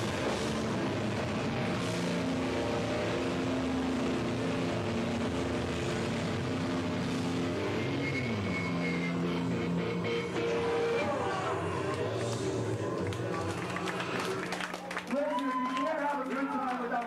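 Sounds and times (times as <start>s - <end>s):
dense wash of noise: 0.0s - 14.6s
distorted electric guitars: 0.0s - 14.9s.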